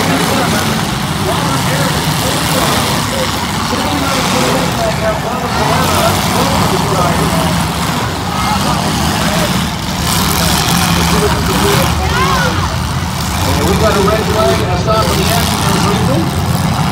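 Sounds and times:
car engines revving: 0.0s - 16.9s
voices: 0.0s - 16.9s.

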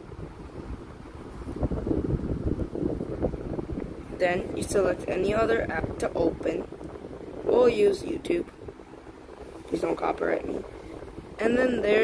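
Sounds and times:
wind noise on microphone: 0.0s - 12.0s.

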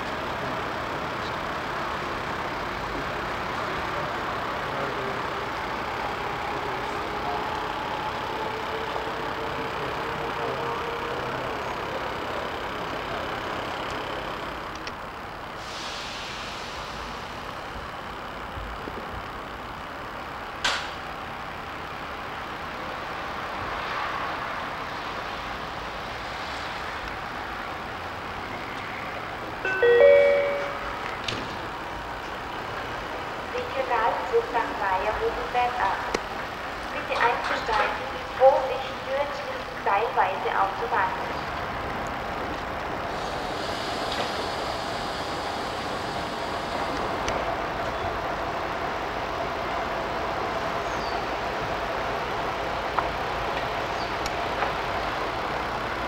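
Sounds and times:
electric train rumbling: 0.0s - 56.0s
train gliding whine: 0.0s - 56.0s
public address chime: 29.6s - 31.2s
voice announcement: 29.6s - 31.2s, 33.4s - 36.2s, 36.8s - 41.6s.

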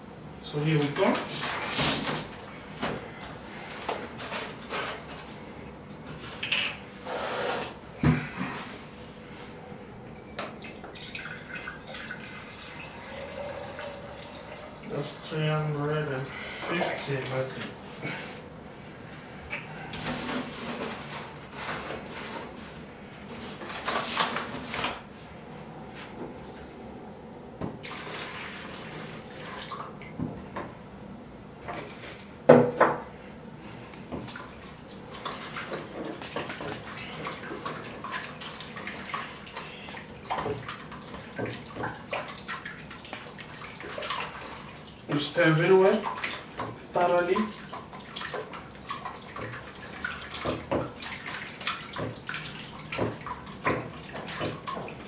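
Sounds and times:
liquid sloshing in plastic bucket: 34.0s - 55.0s.

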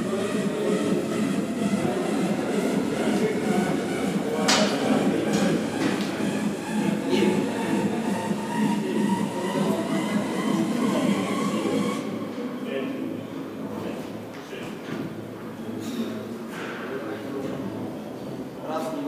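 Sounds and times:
din of a busy gym hall: 0.0s - 19.0s.

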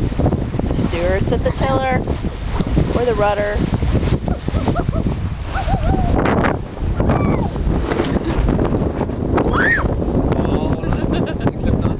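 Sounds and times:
water splashing along hull: 0.0s - 11.9s
wind buffeting microphone: 0.0s - 11.9s.

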